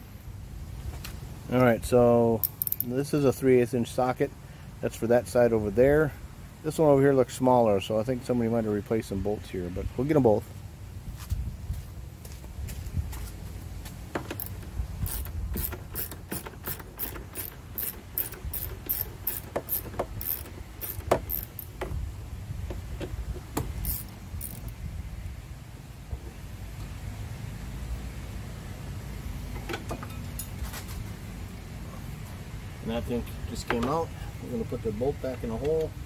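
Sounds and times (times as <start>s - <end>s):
socket ratchet clicking: 14.2s - 21.8s, 23.7s - 24.7s.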